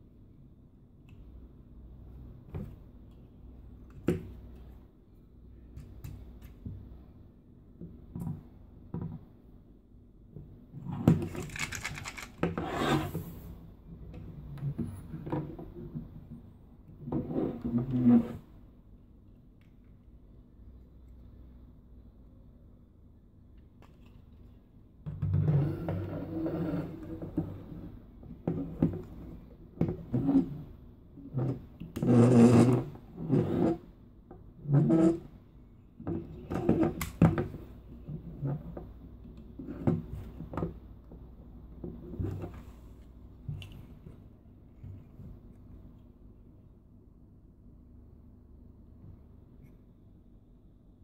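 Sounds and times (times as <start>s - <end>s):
plastic toy parts scraping: 11.1s - 13.4s.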